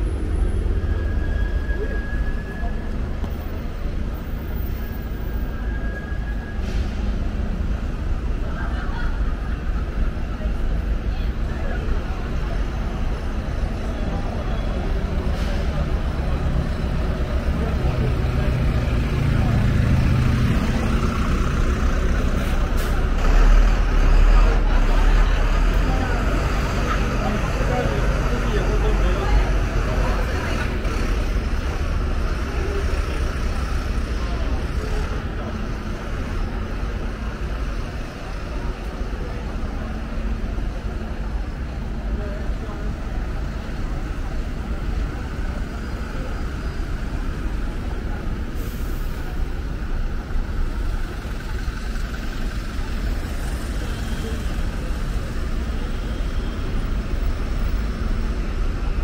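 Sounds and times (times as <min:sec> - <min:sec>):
bus engines rumbling: 0:00.0 - 0:59.0
passersby talking: 0:00.0 - 0:59.0
road noise: 0:00.0 - 0:59.0.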